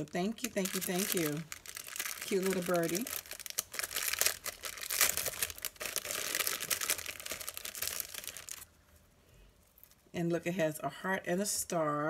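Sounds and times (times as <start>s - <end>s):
paper wrapping crinkling: 0.0s - 8.7s
small clicks and crackles: 0.0s - 8.7s.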